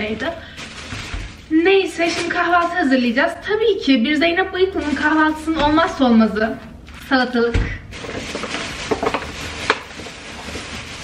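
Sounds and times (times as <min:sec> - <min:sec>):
plastic bag rustling: 0:00.0 - 0:03.3, 0:04.3 - 0:06.3, 0:07.9 - 0:11.0.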